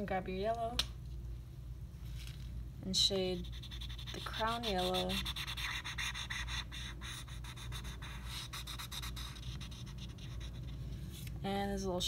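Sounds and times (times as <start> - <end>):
marker scratching on paper: 3.4 - 10.7.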